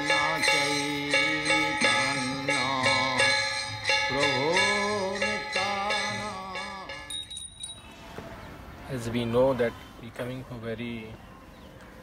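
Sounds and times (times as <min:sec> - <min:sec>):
devotional chant singing: 0:00.0 - 0:07.2
faint high ringing: 0:00.0 - 0:08.2.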